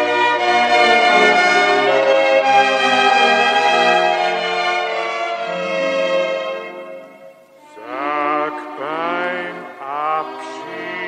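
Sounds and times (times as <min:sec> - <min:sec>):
orchestral music: 0:00.0 - 0:11.0.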